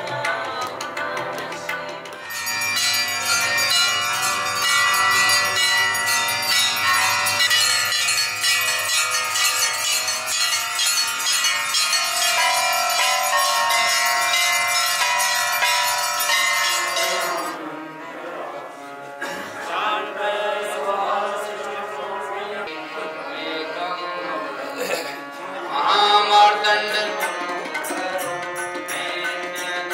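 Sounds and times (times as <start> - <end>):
temple bells ringing: 2.2 - 17.6.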